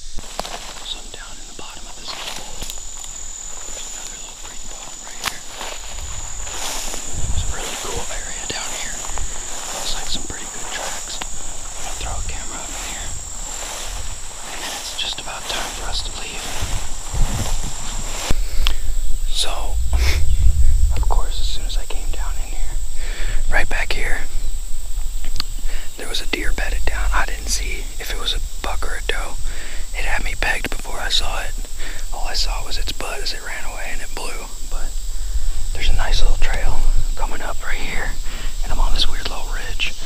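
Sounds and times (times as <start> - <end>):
people whispering: 0.0 - 24.4, 25.5 - 35.0, 35.7 - 40.0
low rumble on microphone: 0.0 - 40.0
high-pitched drone: 0.9 - 24.6.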